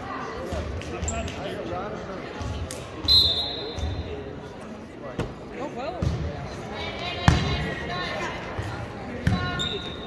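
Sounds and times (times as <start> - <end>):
voices in a large gym: 0.0 - 10.0.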